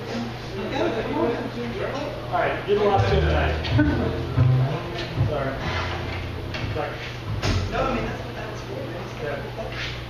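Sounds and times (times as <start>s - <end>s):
people talking: 0.0s - 10.0s
upright bass plucking: 2.9s - 8.5s
light drum or cymbal hits: 3.0s - 8.2s.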